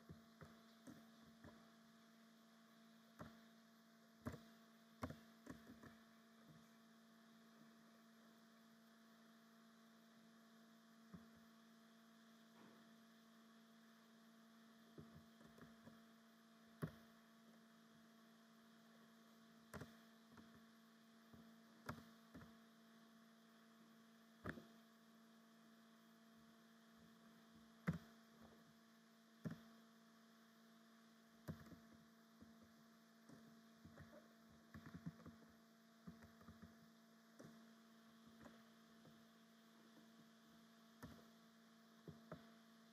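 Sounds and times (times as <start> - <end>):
faint electrical hum: 0.0 - 42.9
keyboard keystroke clicks: 4.2 - 6.0.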